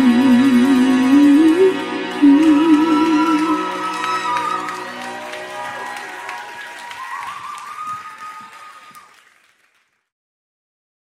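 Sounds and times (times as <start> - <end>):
audience applause: 2.0 - 10.1.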